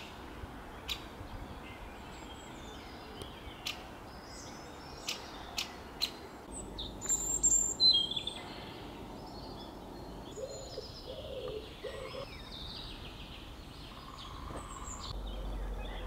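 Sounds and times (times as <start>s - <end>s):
wild birds chirping: 0.0s - 16.0s.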